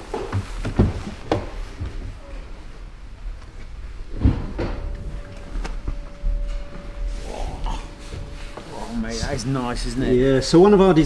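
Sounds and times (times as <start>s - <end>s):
clicks and upholstery rustles: 3.4s - 7.1s
faint steady tone: 4.4s - 11.0s.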